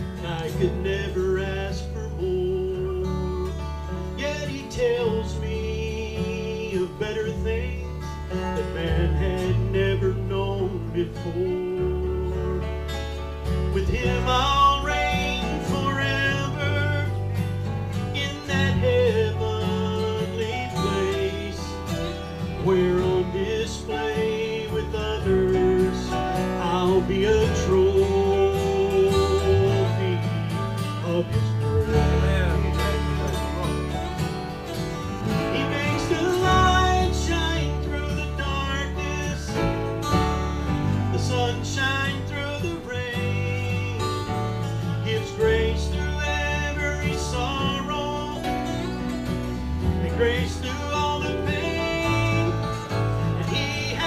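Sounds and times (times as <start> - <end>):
electric bass: 0.0 - 54.0
slide guitar gliding notes: 0.0 - 54.0
strummed acoustic guitar: 0.0 - 54.0.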